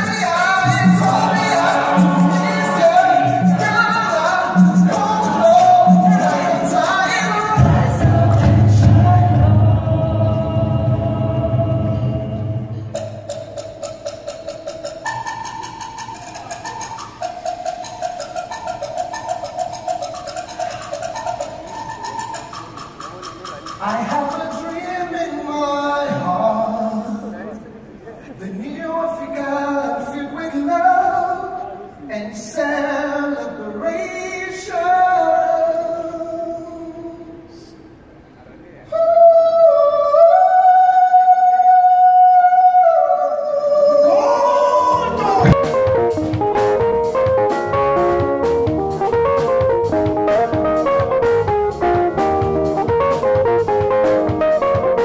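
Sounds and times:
quick percussion beat: 0.0s - 9.2s, 13.0s - 24.6s
singer holding a high note: 38.9s - 45.6s
live jazz band: 44.9s - 55.0s.

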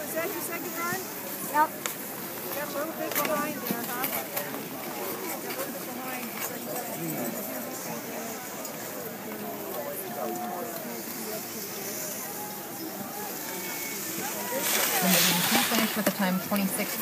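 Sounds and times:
people talking indistinctly: 0.0s - 17.0s
loud rush of noise: 11.0s - 17.0s.

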